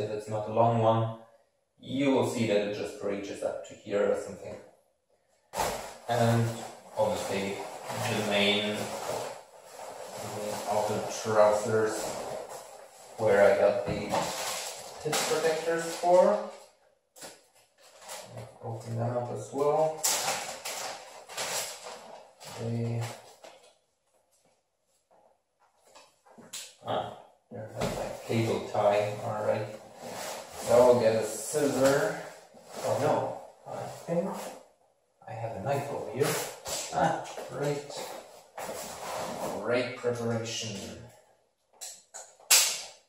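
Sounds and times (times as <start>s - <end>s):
man making wordless vocal sounds: 10.2s - 12.2s, 13.2s - 14.3s, 26.8s - 29.7s, 35.2s - 38.0s.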